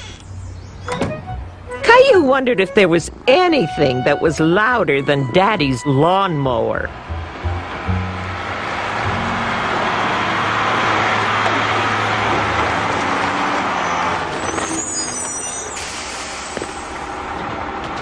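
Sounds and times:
background music: 0.9s - 11.2s
truck engine running loudly: 6.9s - 18.0s.

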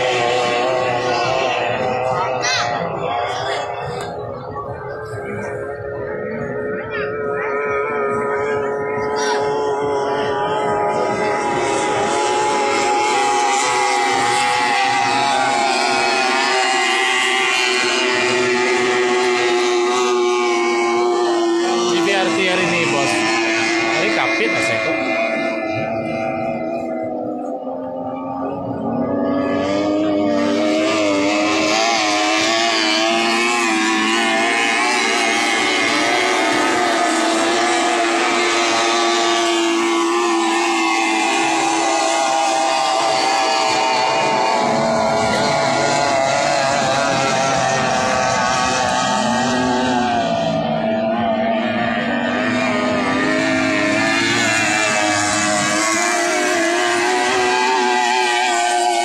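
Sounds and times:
racing outboard engines whining: 0.0s - 59.0s.

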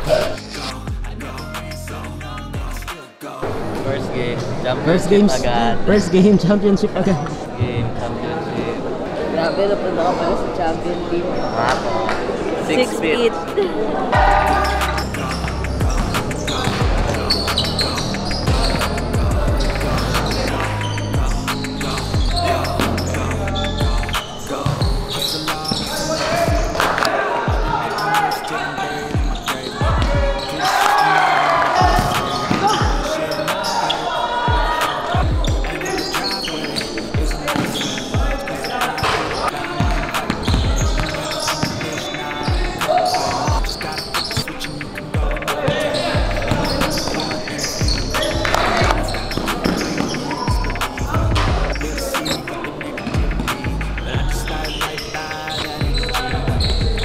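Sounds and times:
voices in echoing gym: 0.0s - 0.8s, 2.6s - 57.0s.

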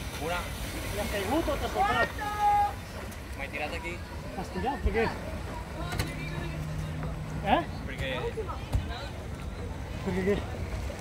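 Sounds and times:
low rumbling outdoor noise: 0.0s - 11.0s.

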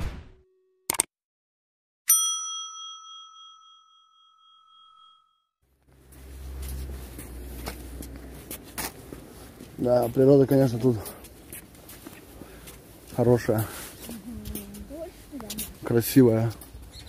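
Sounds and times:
bright bell ding: 2.1s - 5.4s
outdoor background rumble: 5.9s - 10.0s.

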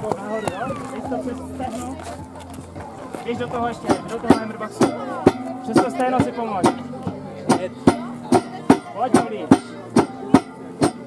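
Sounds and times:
hammer strikes ringing: 3.8s - 11.0s.

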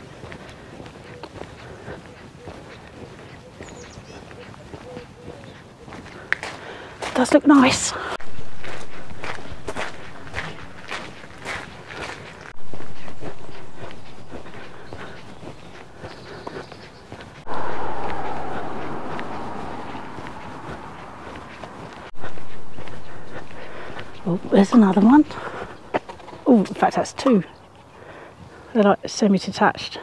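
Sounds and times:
footsteps on gravel: 0.0s - 27.4s
steady rushing noise: 17.4s - 24.2s.

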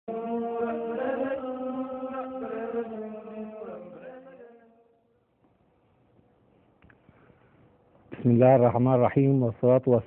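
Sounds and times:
intro music with chanted vocal: 0.1s - 5.2s.

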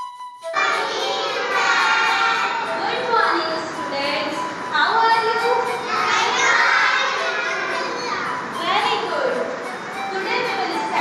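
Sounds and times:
young children's voices: 0.6s - 11.0s.

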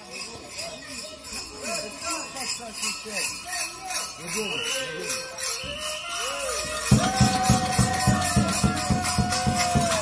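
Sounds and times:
costume bells jingling: 0.0s - 10.0s
voices: 0.0s - 10.0s.

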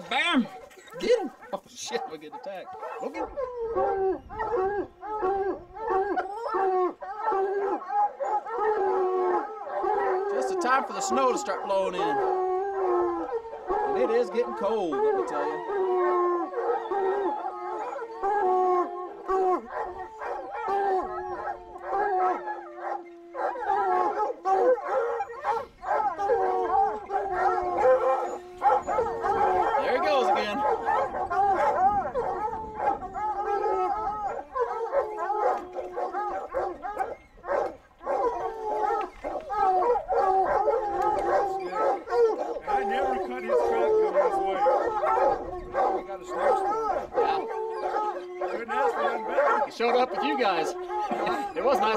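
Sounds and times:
hounds baying and howling: 0.0s - 51.9s.

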